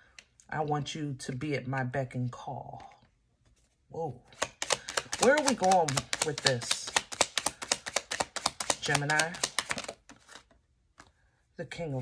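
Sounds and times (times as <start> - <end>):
rapid sharp clicks: 4.4 - 10.0.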